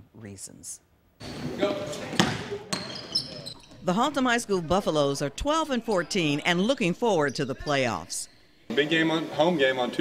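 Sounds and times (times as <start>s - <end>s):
shoe squeaks: 1.2s - 8.6s
basketball bouncing on hardwood: 2.2s - 3.8s.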